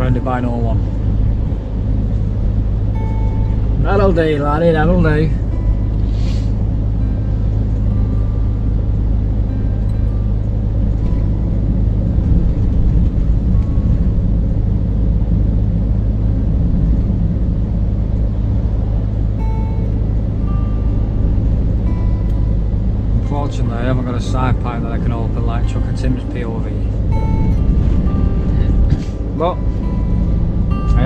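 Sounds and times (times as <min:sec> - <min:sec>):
lorry engine hum: 0:00.0 - 0:31.0
tyre and road noise: 0:00.0 - 0:31.0.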